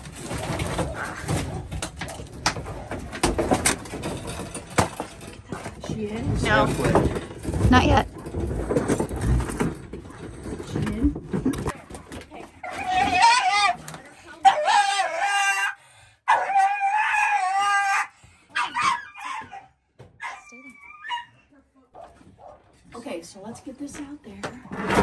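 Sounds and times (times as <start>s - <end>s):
dog crying and yelping: 12.6s - 13.8s, 14.4s - 21.5s.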